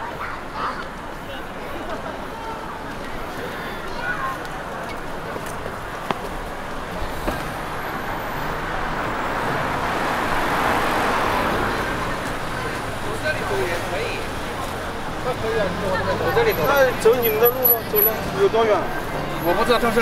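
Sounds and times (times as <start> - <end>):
faint voices of passers-by: 0.0 - 20.0
car passing by: 7.1 - 20.0.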